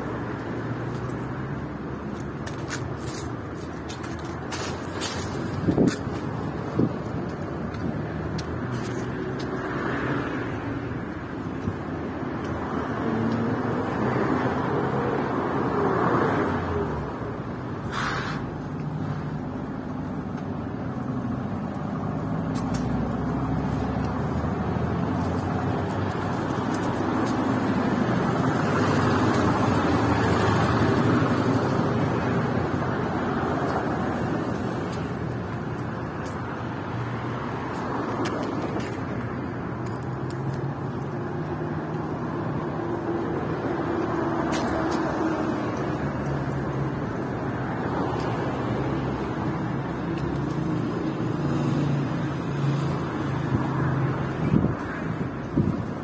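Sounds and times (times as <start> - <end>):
tyres rolling by: 0.0 - 56.0
vehicle engines humming: 0.0 - 56.0.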